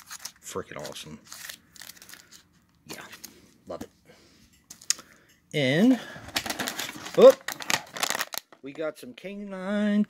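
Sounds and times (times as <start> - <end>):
packaging rustling and crinkling: 6.2 - 8.6.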